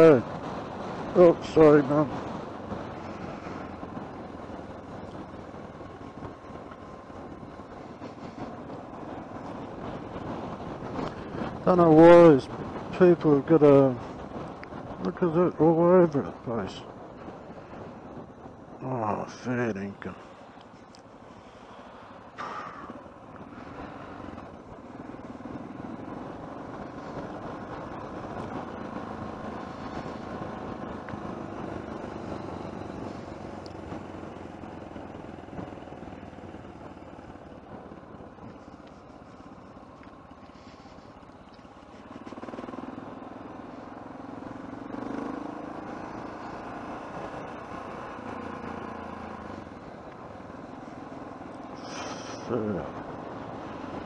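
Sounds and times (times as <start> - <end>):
motorcycle engine running: 0.0 - 54.0
wind and road noise: 0.0 - 54.0.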